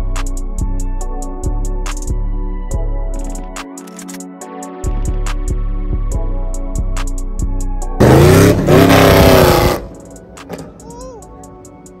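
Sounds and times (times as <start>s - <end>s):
car engine revving past: 8.0s - 10.7s.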